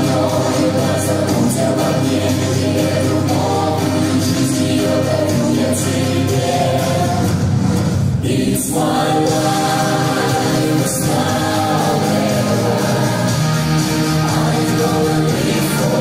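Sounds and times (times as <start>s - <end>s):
mixed choir singing harmony: 0.0s - 16.0s.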